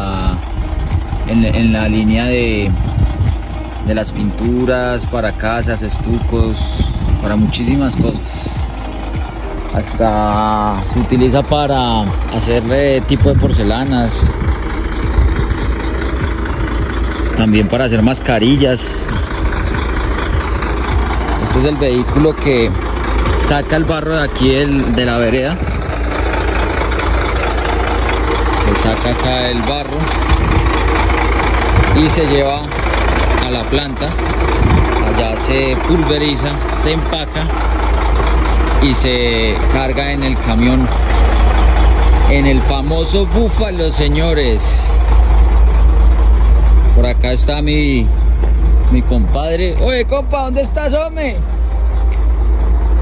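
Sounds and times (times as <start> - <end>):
truck engine idling: 0.0 - 53.0.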